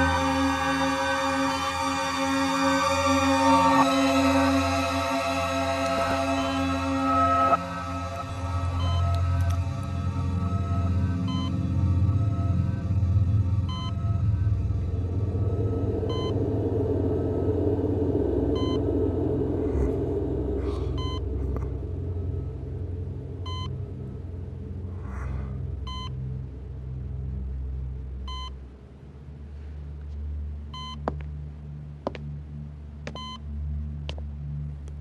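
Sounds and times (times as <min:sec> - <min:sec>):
low rumbling drone: 0:00.0 - 0:35.0
patient monitor beeps: 0:08.8 - 0:09.3, 0:11.3 - 0:11.6, 0:13.7 - 0:14.2, 0:16.1 - 0:16.4, 0:18.6 - 0:18.8, 0:28.3 - 0:28.5, 0:30.8 - 0:31.0.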